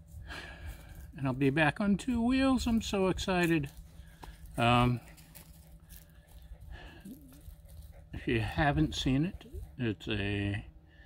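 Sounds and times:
low steady hum: 0:00.0 - 0:11.0
quiet outdoor ambience: 0:00.0 - 0:11.0.

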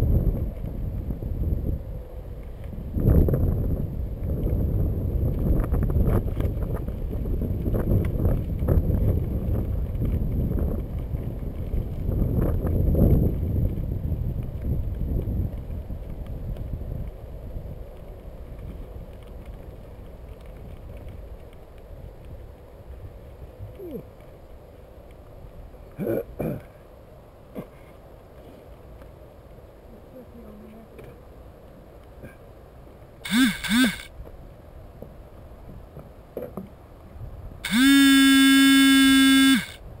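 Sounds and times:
wind rumbling on microphone: 0:00.0 - 0:26.3, 0:28.0 - 0:40.0
loud buzzing tone: 0:33.2 - 0:34.1, 0:37.6 - 0:39.8.

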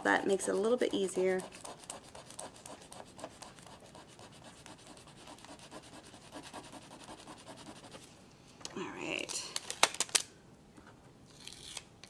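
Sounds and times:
pen scratching on paper: 0:01.2 - 0:08.0.

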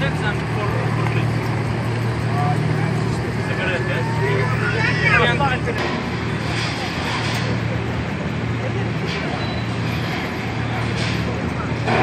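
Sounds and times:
engine humming at low speed: 0:00.0 - 0:12.0
voices: 0:00.0 - 0:12.0.

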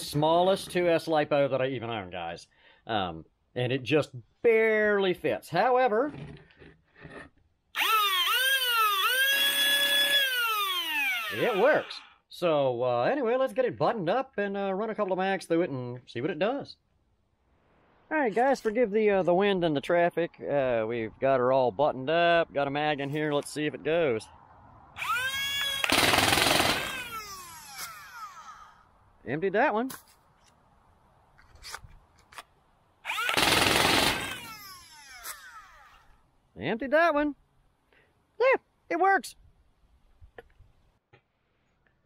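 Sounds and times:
flywheel motors whining: 0:07.8 - 0:11.9, 0:26.8 - 0:28.8, 0:33.1 - 0:36.1.

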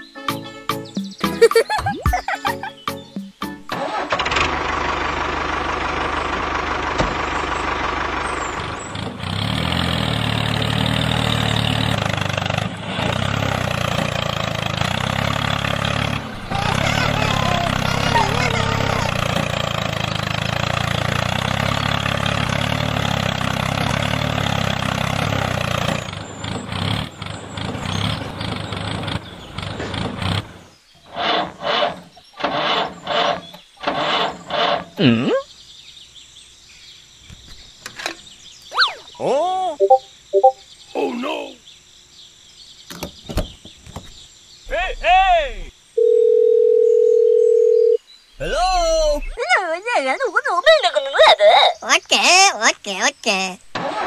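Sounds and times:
engine-like running sound: 0:03.7 - 0:33.0, 0:44.7 - 0:45.7, 0:48.4 - 0:49.4
squeaky cartoon voices: 0:16.4 - 0:19.2, 0:35.0 - 0:35.5, 0:38.7 - 0:41.6, 0:44.7 - 0:45.7, 0:48.4 - 0:53.6
phone tone: 0:39.8 - 0:40.6, 0:46.0 - 0:48.0
short sound effects: 0:39.8 - 0:40.6.

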